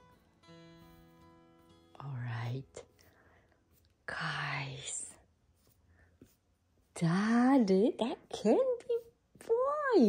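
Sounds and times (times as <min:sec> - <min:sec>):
acoustic guitar music: 0:00.0 - 0:02.1.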